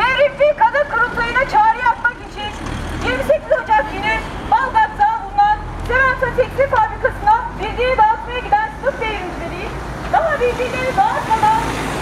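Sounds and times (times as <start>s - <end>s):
road vehicle rumbling past: 0.0s - 12.0s.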